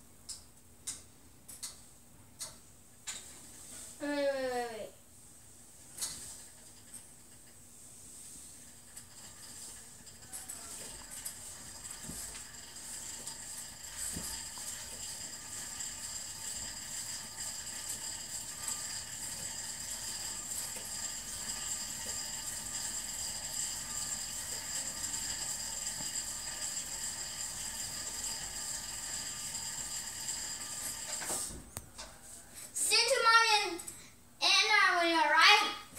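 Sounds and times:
spin bike flywheel whirring: 0:05.9 - 0:33.2.

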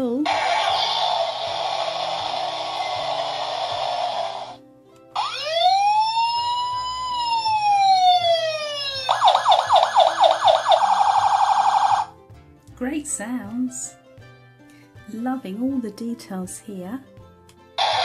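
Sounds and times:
toy rushing sound effect: 0:00.3 - 0:04.6
toy siren wailing and yelping: 0:05.2 - 0:12.1.

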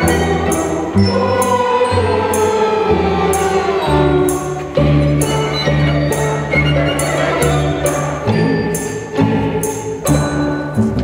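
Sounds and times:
jingling percussion stroke: 0:00.0 - 0:11.0
string orchestra playing chords: 0:00.0 - 0:11.0.

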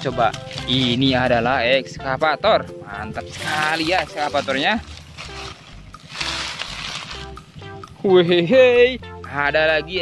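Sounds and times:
faint background music: 0:00.0 - 0:10.0
rustling of dry leaves: 0:03.2 - 0:07.6.

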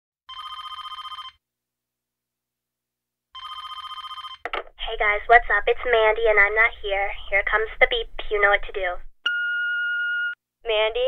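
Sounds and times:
telephone warbling ring: 0:00.3 - 0:01.4, 0:03.4 - 0:04.4.

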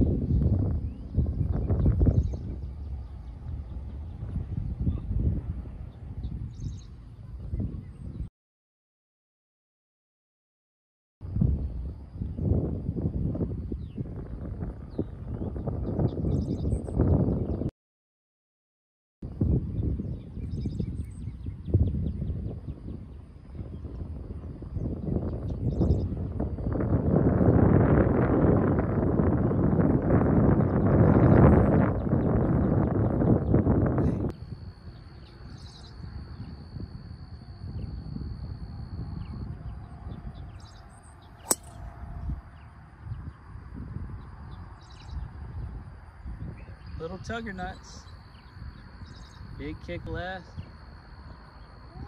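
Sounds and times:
wind buffeting microphone: 0:00.0 - 0:08.3, 0:11.2 - 0:17.7, 0:19.3 - 0:52.0
birds chirping: 0:00.2 - 0:05.1, 0:05.8 - 0:08.3, 0:34.5 - 0:41.8, 0:46.5 - 0:51.9.

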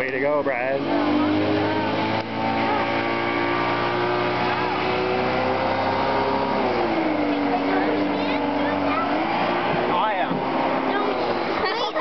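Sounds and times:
motorboat engine running: 0:00.0 - 0:12.0.

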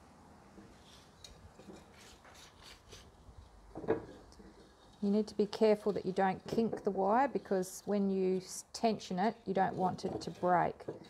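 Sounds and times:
wire scratching on wood: 0:00.8 - 0:11.0.

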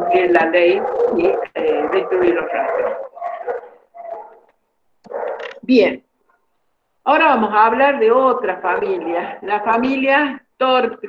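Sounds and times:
dog barking: 0:00.4 - 0:04.5, 0:05.1 - 0:05.6.

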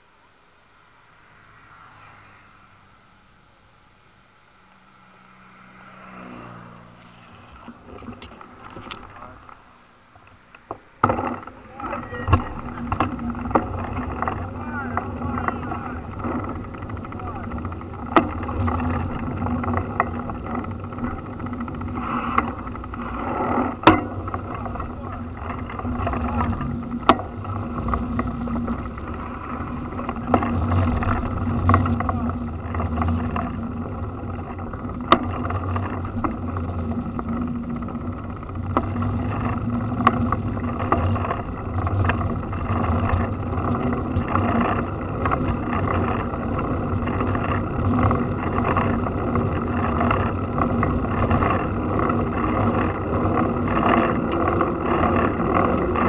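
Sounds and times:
road rumble and wind noise: 0:00.0 - 0:56.0
steady low hum: 0:00.0 - 0:56.0
indistinct voices: 0:11.4 - 0:21.3, 0:23.5 - 0:34.9.

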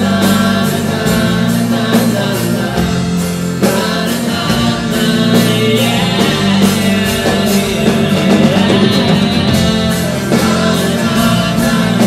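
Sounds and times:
live rock band playing: 0:00.0 - 0:12.0
stage piano playing: 0:00.0 - 0:12.0.

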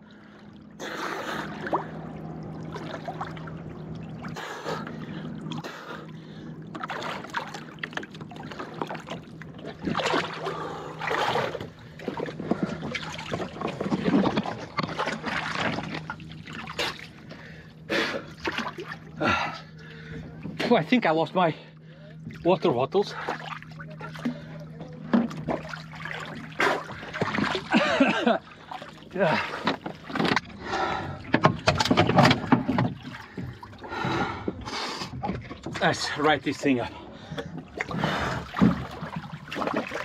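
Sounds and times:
steady low hum: 0:00.0 - 0:40.0
water sloshing and splashing: 0:00.0 - 0:40.0.

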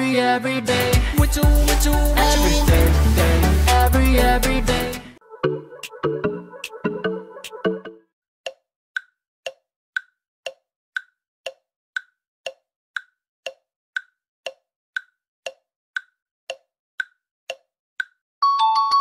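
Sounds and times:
timer ticking: 0:00.9 - 0:04.7, 0:08.4 - 0:18.2.

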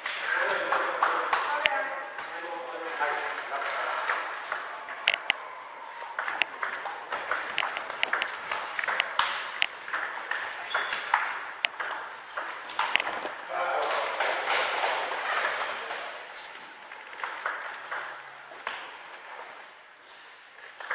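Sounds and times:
table tennis ball ticks: 0:04.1 - 0:05.4, 0:06.2 - 0:10.1, 0:10.7 - 0:13.1.

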